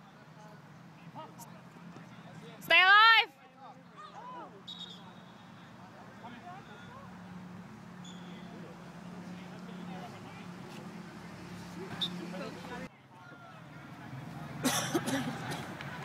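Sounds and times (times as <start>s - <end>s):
distant players calling: 1.0s - 16.0s.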